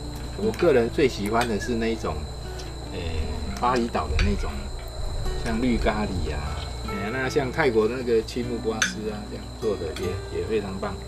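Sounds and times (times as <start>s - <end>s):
insects chirring: 0.0s - 11.0s
people talking: 0.4s - 2.3s, 2.9s - 4.7s, 5.4s - 11.0s.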